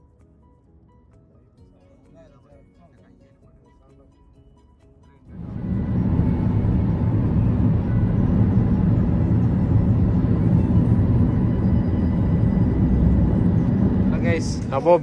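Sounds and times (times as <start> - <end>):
faint steady hum: 5.3 - 14.8
car road and engine rumble: 5.3 - 15.0.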